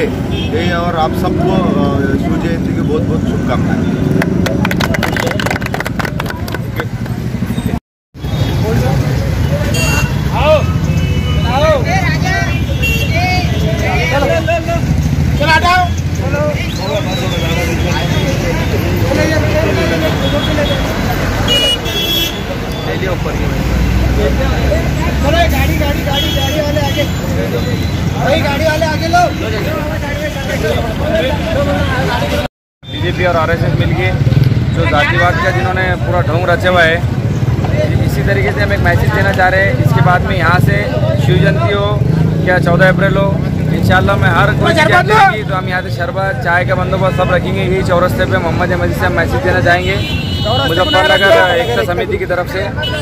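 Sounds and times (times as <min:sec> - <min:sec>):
street traffic: 0:00.0 - 0:53.0
voices talking: 0:00.0 - 0:53.0
vehicle horn: 0:09.6 - 0:10.3, 0:12.6 - 0:13.3, 0:21.5 - 0:22.5, 0:49.9 - 0:51.9
man speaking: 0:37.8 - 0:53.0.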